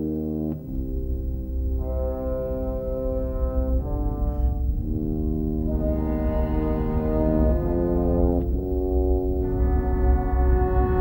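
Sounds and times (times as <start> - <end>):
steady low bass: 0.0 - 11.0
held brass chords: 1.8 - 11.0.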